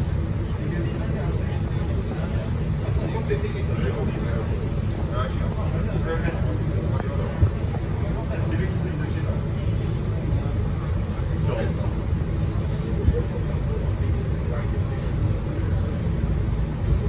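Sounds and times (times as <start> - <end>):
bus engine idling: 0.0 - 17.0.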